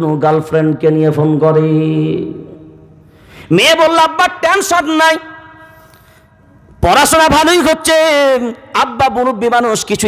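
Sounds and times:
man speaking over loudspeaker: 0.0 - 2.7, 3.5 - 5.8, 6.8 - 10.0.

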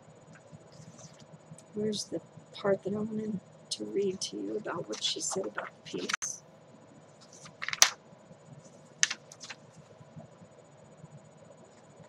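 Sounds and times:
magazine pages turning: 4.9 - 6.2, 7.2 - 8.0, 9.0 - 9.6.

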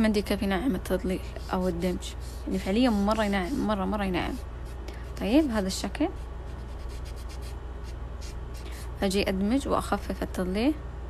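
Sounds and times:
tissue rubbing on paper: 1.1 - 9.0.

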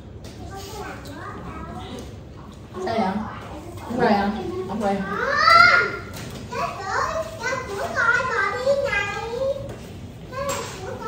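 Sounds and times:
people talking at a table: 0.0 - 11.0.

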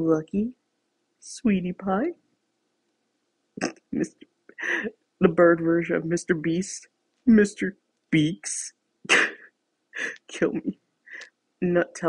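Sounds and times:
person talking: 0.0 - 0.6, 1.2 - 2.2, 3.6 - 12.0
faint room hum: 0.0 - 12.0.

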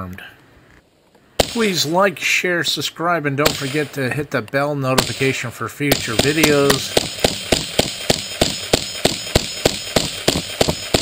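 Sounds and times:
rapid sharp ringing knocks: 6.0 - 11.0.

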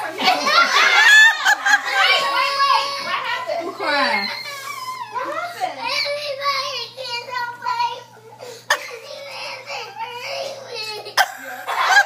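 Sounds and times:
child's wavering voice: 2.0 - 12.0.

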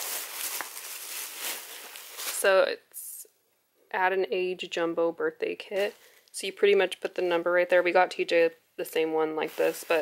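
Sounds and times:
plastic bag rustling and crinkling: 0.0 - 2.6, 5.7 - 6.3, 9.3 - 10.0.

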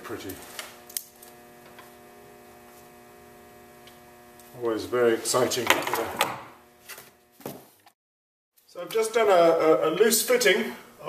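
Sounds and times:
electrical mains hum: 0.0 - 7.8.

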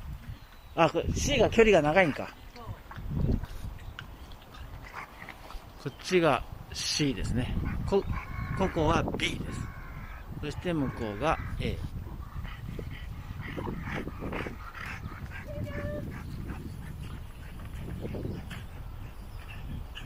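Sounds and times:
dogs whining and barking: 12.1 - 20.0.

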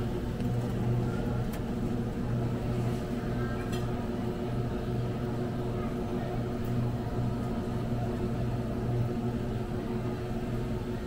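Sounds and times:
refrigerator and ventilation hum: 0.0 - 11.0.

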